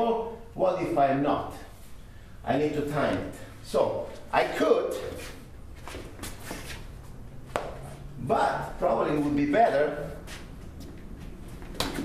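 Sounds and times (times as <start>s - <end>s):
feet shuffling on gym mats: 5.0s - 8.1s, 10.1s - 12.0s
sharp slap of body contact: 11.8s - 12.0s.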